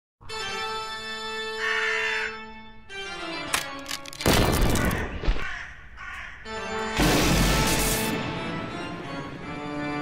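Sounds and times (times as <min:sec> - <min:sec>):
crow cawing: 0:01.6 - 0:02.4, 0:04.6 - 0:06.5
loud burst of noise: 0:07.0 - 0:08.2.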